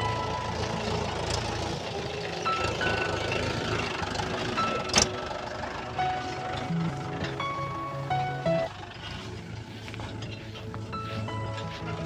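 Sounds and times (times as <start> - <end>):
background music: 0.0 - 12.0
tractor engine running: 0.0 - 12.0.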